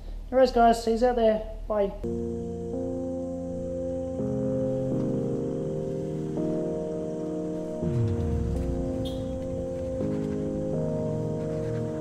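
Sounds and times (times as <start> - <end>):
background music chords: 2.0 - 12.0
low falling sweep: 7.8 - 11.2.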